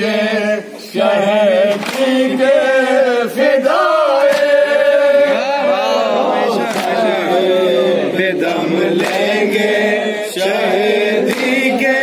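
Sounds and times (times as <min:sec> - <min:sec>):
men chanting in unison: 0:00.0 - 0:12.0
sharp slaps: 0:01.7 - 0:02.2, 0:04.1 - 0:04.7, 0:06.6 - 0:07.0, 0:09.0 - 0:09.4, 0:11.3 - 0:11.7.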